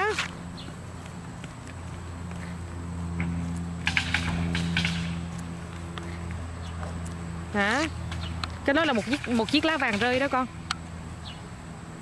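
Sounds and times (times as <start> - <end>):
light footsteps on asphalt: 0.0 - 9.8.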